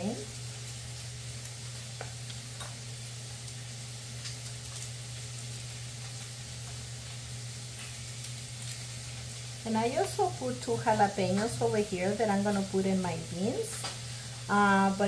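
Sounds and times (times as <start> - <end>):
sausage sizzling in a pan: 0.0 - 15.0.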